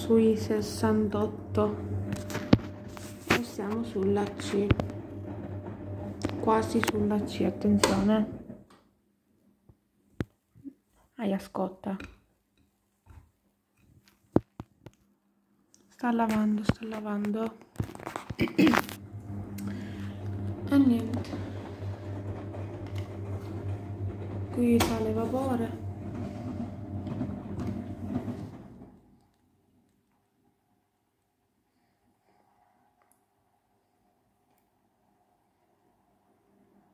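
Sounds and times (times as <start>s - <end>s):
wet laundry tumbling: 0.0s - 8.6s, 17.8s - 29.0s
washing machine hum: 0.0s - 8.7s, 17.9s - 29.2s.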